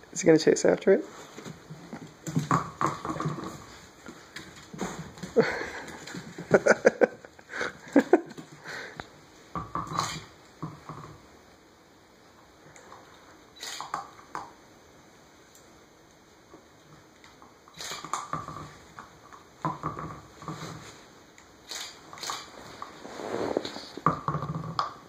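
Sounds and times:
rubber toy knocking on floor: 2.2s - 3.6s, 19.6s - 20.2s.

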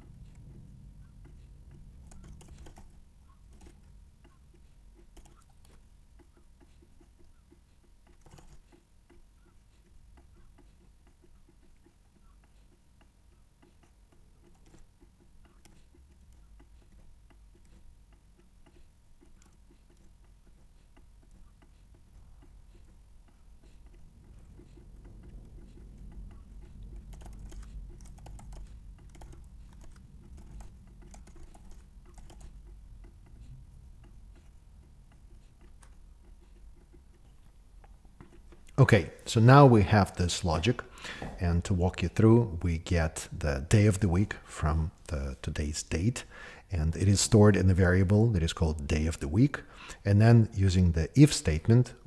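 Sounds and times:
computer keyboard typing: 0.2s - 38.8s.

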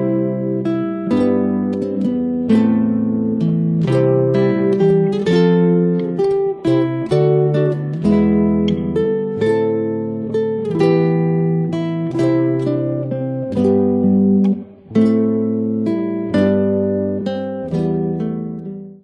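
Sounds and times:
classical guitar duo fingerpicking: 0.0s - 19.0s.

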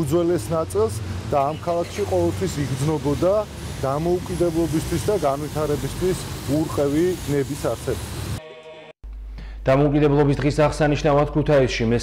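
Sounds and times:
man talking: 0.0s - 8.0s, 9.6s - 12.0s
low rumble of street traffic: 0.0s - 8.4s.

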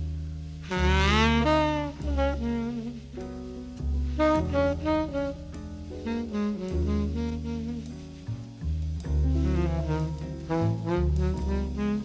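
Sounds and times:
sustained low bass notes: 0.0s - 12.0s
slow saxophone melody: 0.6s - 8.4s, 9.3s - 12.0s.

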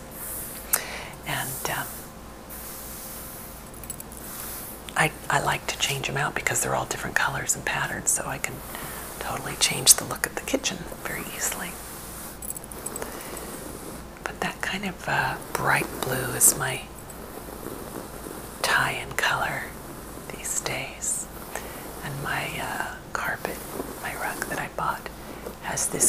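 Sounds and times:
soft whispered speech: 1.2s - 2.0s, 4.9s - 11.8s, 14.2s - 17.0s, 18.5s - 26.0s
fingertips rubbing fabric: 1.4s - 5.4s, 8.3s - 26.0s.

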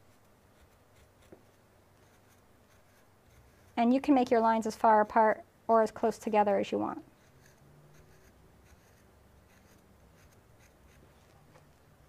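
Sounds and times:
tool scratching clay: 0.0s - 4.2s, 7.1s - 11.3s.

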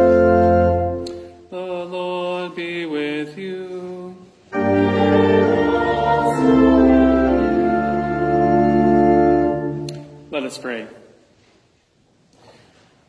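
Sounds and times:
organ: 0.0s - 1.4s, 4.5s - 10.4s
congregation singing: 0.0s - 10.3s.

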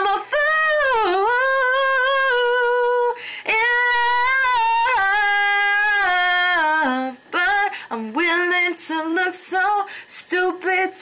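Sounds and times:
woman singing unaccompanied: 0.0s - 11.0s
singer breathing: 3.1s - 3.5s, 7.7s - 8.0s, 9.9s - 10.1s.

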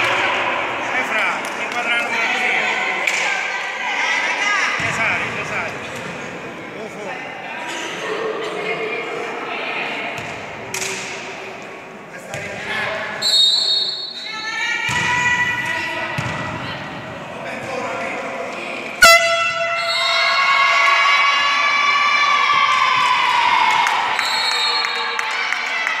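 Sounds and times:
volleyball strikes: 14.9s - 16.6s
crowd cheering: 19.2s - 26.0s.

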